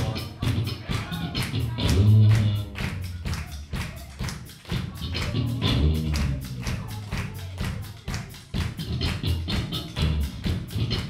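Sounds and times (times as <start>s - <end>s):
electric guitars: 0.0s - 3.8s, 4.4s - 7.7s, 8.6s - 11.0s
bass guitar: 0.0s - 11.0s
drums: 0.0s - 11.0s.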